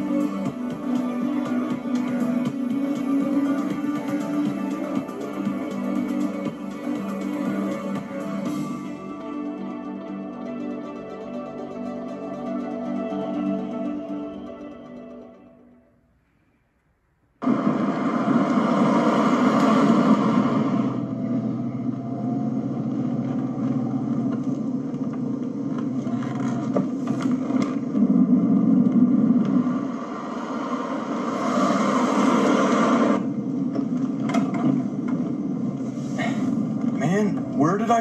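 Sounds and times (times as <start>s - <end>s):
rushing surges: 17.4s - 37.3s
car engine and road rumble: 17.4s - 38.0s.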